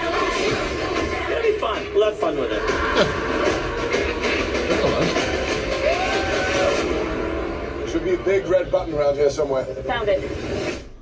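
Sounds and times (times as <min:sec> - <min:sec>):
dense sound effects: 0:02.6 - 0:11.0.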